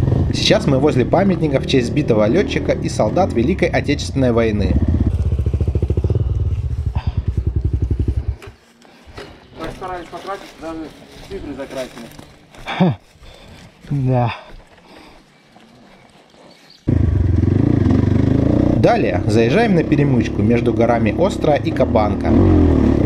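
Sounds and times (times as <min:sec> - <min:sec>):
motorcycle engine idling: 0:02.9 - 0:08.6, 0:16.9 - 0:18.9.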